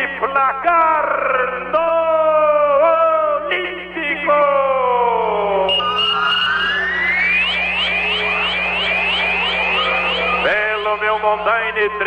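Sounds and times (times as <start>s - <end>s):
electronic jingle sweeps and chirps: 5.6s - 12.0s.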